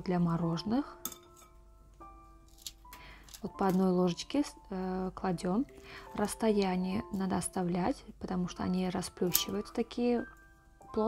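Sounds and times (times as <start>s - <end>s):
soft background music: 0.0s - 11.0s
metal scoop clinking on glass bowl: 1.0s - 1.6s.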